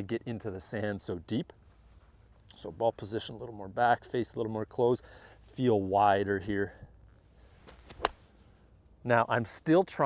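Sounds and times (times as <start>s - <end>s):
golf club striking sand: 7.6s - 8.4s.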